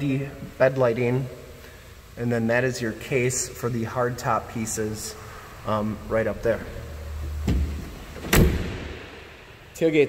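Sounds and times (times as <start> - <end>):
tailgate knock: 7.4 - 9.0
tailgate latching thud: 7.4 - 9.0.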